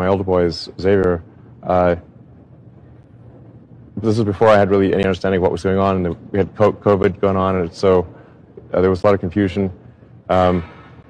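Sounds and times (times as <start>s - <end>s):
low steady room tone: 0.0s - 11.0s.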